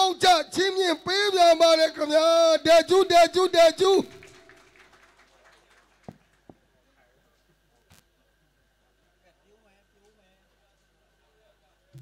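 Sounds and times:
man's amplified voice echoing: 0.0 - 4.5.

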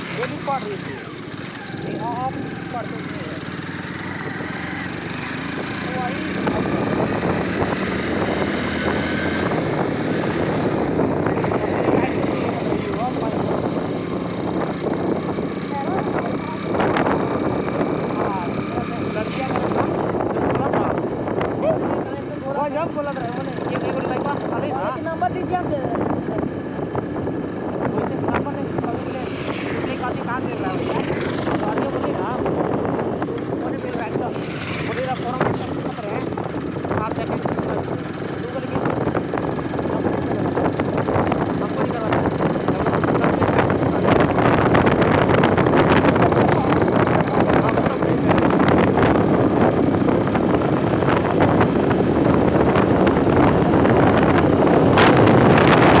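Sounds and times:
vehicle engine and road rumble: 0.0 - 56.0
wind buffeting microphone: 0.0 - 56.0.

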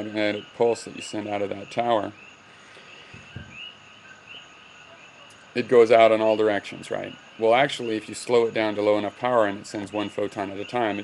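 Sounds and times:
faint high chirps: 0.0 - 11.0.

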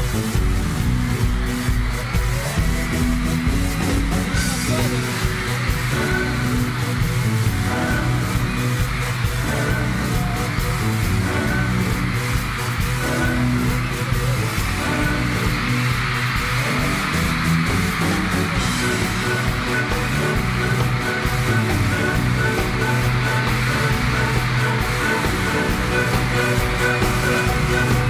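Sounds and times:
pop music with steady beat: 0.0 - 28.0.

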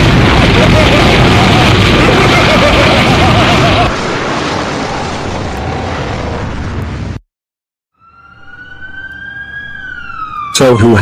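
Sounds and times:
cartoon explosion rushing: 0.0 - 7.2
emergency vehicle siren wailing: 7.9 - 11.0.

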